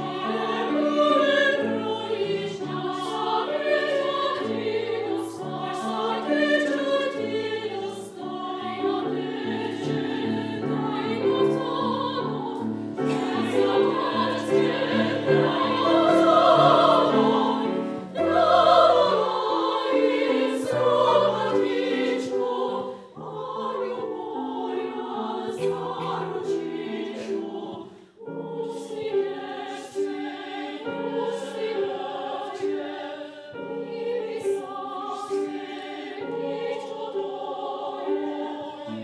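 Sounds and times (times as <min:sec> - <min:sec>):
women's choir singing: 0:00.0 - 0:39.0.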